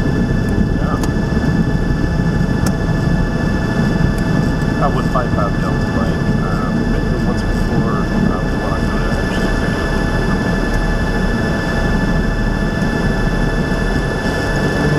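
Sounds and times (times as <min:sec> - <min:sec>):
aircraft engine idling drone: 0:00.0 - 0:14.9
thin steady whine: 0:00.0 - 0:14.9.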